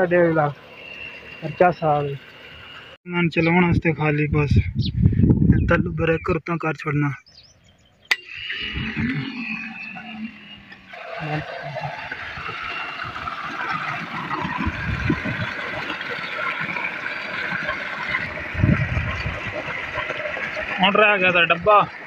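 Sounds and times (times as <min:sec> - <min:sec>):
water gushing into concrete basin: 0:08.2 - 0:22.0.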